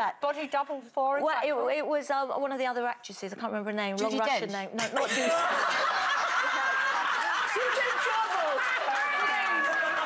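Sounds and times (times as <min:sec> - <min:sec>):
women laughing: 0:04.8 - 0:09.0.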